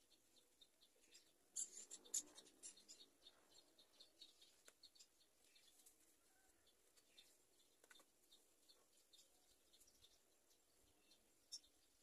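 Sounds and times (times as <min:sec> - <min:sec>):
faint scratching and scraping: 0:01.0 - 0:04.8.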